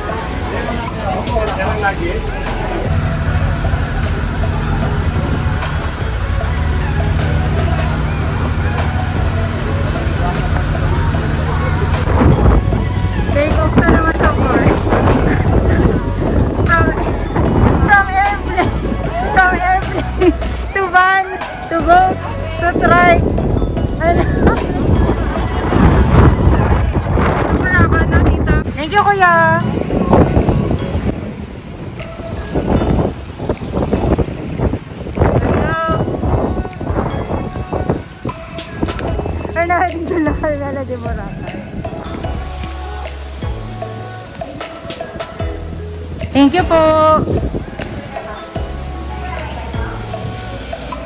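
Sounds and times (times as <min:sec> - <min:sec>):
boat engine humming: 0:00.0 - 0:29.8
vehicle rumbling: 0:00.0 - 0:32.4.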